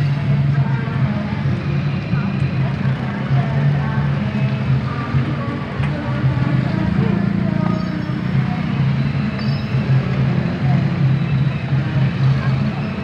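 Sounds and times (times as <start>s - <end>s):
background music: 0.0s - 13.0s
motorcycle engines idling: 0.0s - 13.0s
people's voices: 0.0s - 13.0s.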